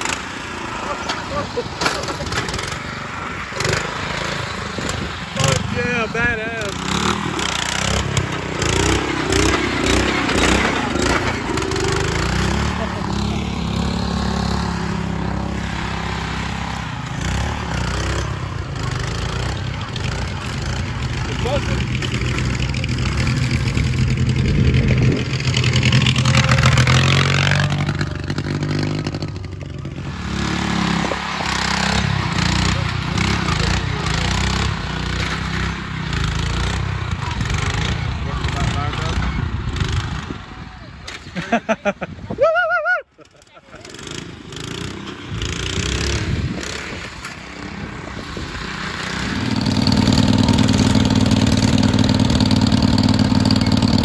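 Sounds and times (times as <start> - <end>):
small tractor engine running: 0.0 - 41.7, 43.2 - 54.0
people talking: 5.4 - 6.8, 18.9 - 24.2, 32.4 - 34.7, 37.1 - 39.3, 40.5 - 42.7.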